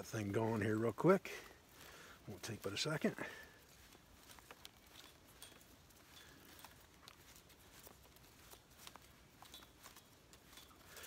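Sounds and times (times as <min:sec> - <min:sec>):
cordage ticks and rustles: 0:00.0 - 0:11.0.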